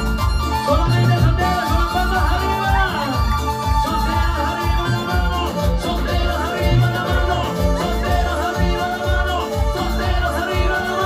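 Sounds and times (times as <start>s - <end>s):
live band playing dance music: 0.0s - 11.0s
person singing: 0.0s - 11.0s.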